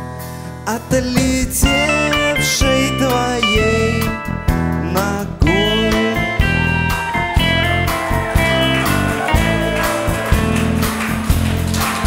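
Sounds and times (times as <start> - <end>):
low bass notes: 0.0 - 12.0
plucked guitars: 1.2 - 12.0.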